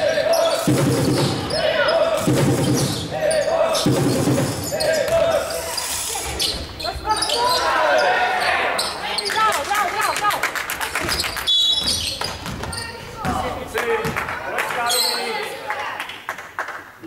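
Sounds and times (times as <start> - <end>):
people shouting: 0.0 - 2.4, 7.1 - 8.8.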